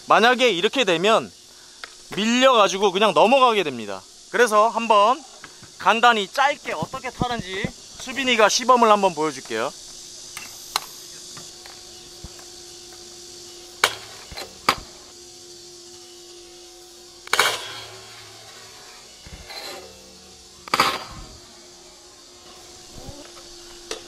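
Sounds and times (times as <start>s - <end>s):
insect drone: 0.0s - 24.0s
scooter landing clatter: 13.8s - 15.0s, 17.3s - 17.8s, 20.6s - 21.3s
scooter sliding on metal rail: 18.7s - 20.0s, 20.7s - 21.2s.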